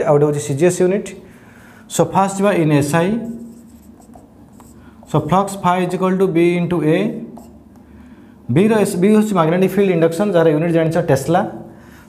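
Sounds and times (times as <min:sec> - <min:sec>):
person speaking: 0:01.9 - 0:07.7
marker scratching on whiteboard: 0:03.0 - 0:06.0, 0:07.2 - 0:07.7.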